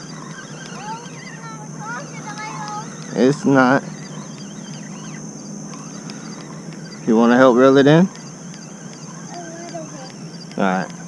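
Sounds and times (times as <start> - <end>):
birds chirping: 0.0 - 11.0
high-pitched whine: 0.0 - 11.0
outdoor background hiss: 0.0 - 11.0.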